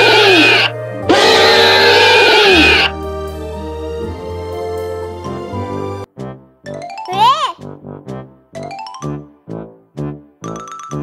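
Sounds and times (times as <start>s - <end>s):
dinosaur roar: 0.0s - 3.0s
background music: 0.0s - 11.0s.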